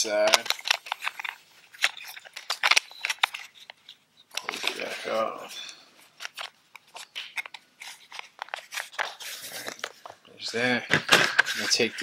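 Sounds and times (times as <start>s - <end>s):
plastic clicks and scrapes: 0.2s - 5.0s, 6.2s - 10.2s.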